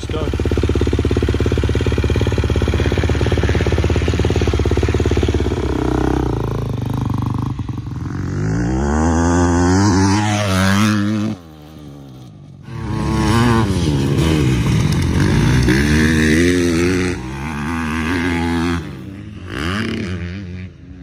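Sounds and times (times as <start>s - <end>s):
motocross bike engine idling: 0.0s - 8.5s
motocross bike revving away: 0.0s - 21.0s.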